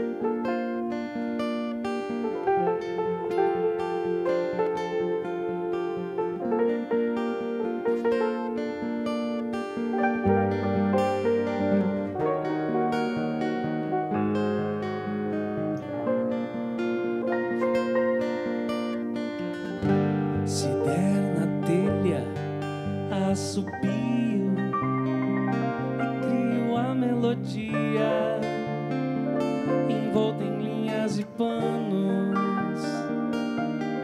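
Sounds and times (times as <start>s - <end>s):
fingerpicked acoustic guitar: 0.0s - 34.0s
grand piano: 0.0s - 34.0s.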